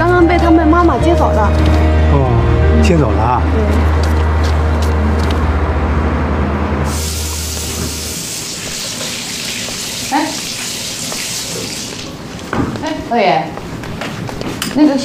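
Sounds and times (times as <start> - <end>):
background music low note: 0.0 - 8.1
tap running water into sink: 7.0 - 12.2.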